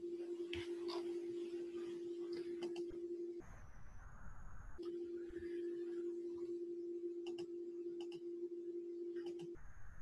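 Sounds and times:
low electronic hum: 0.0s - 10.0s
computer mouse clicks: 2.6s - 2.9s, 7.2s - 8.2s, 9.2s - 9.6s.

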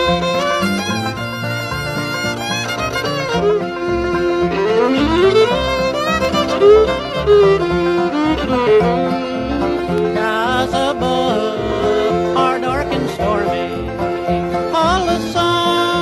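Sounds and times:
bluegrass band playing: 0.0s - 16.0s
fiddle melody with sliding notes: 0.0s - 16.0s.

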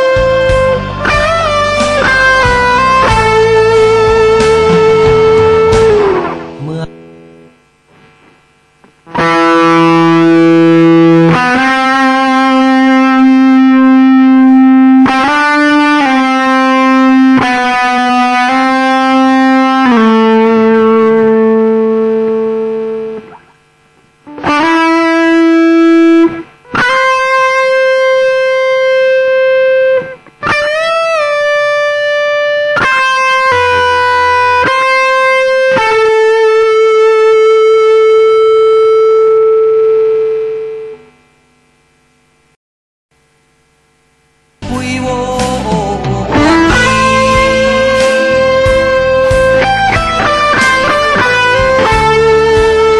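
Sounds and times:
distorted electric guitar solo: 0.0s - 42.6s, 43.8s - 52.9s.

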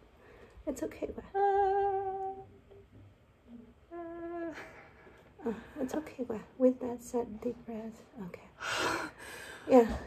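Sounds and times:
woman humming: 1.2s - 2.7s, 3.5s - 6.0s.

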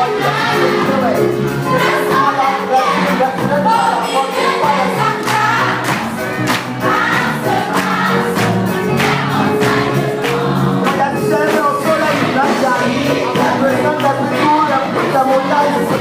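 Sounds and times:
choir singing gospel: 0.0s - 16.0s
instrumental accompaniment: 0.0s - 16.0s
steady percussive beat: 0.0s - 16.0s.

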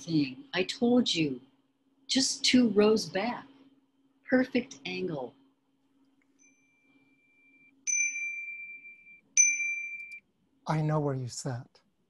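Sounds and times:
faint steady tone: 0.0s - 11.7s
high dings: 6.4s - 10.2s.

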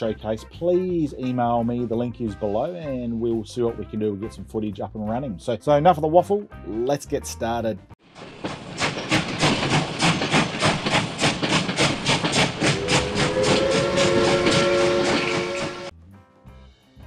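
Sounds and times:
quiet music: 0.0s - 8.0s
steam locomotive chuffing: 8.0s - 15.9s
steam whistle chord: 12.6s - 15.9s.

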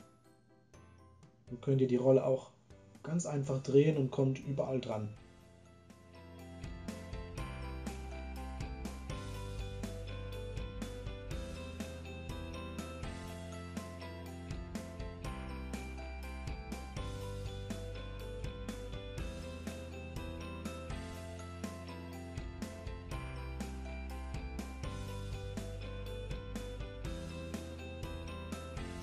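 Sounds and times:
background music with ticking beat: 0.0s - 29.0s.

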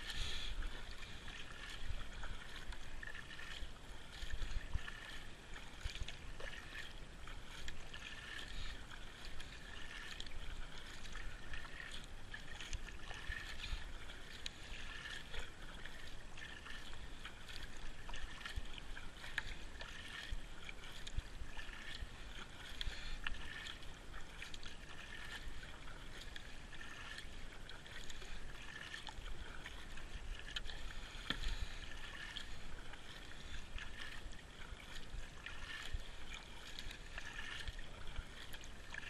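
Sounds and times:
kayak paddle strokes: 0.0s - 39.0s
water splashing and trickling: 0.0s - 39.0s.

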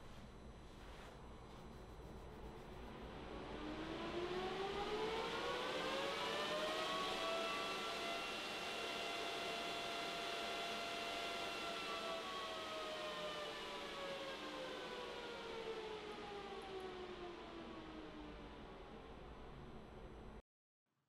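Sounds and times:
cooling fan whine: 0.0s - 20.4s.

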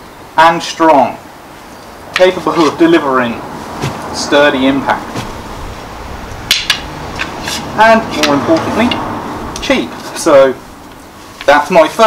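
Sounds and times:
wooden sticks clacking together: 6.5s - 11.6s.

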